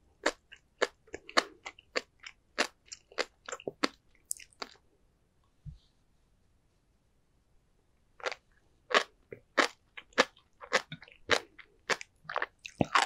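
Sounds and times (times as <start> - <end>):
chewing with beads popping: 0.2 - 4.8, 8.2 - 13.0.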